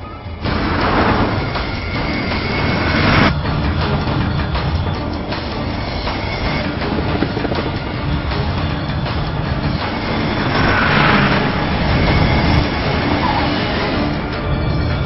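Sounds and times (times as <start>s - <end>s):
jet engines passing overhead: 0.0s - 15.0s
music: 0.0s - 15.0s
car road noise: 0.4s - 15.0s.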